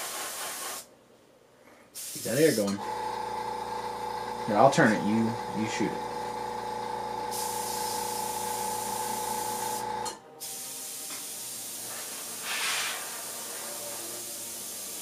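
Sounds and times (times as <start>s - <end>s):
airbrush hissing: 0.0s - 0.9s, 2.0s - 2.7s, 7.3s - 9.8s, 10.4s - 15.0s
motor hum: 2.8s - 7.3s.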